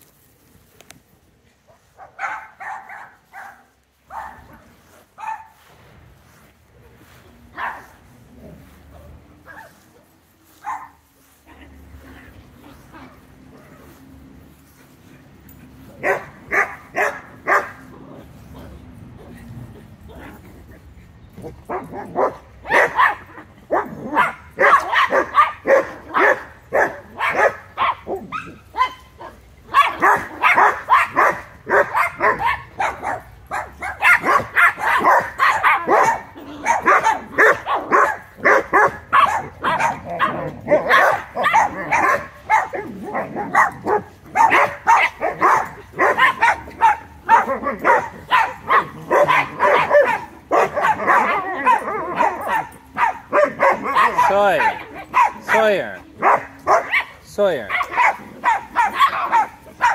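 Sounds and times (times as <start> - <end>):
puppies barking and yipping: 1.6 - 59.9.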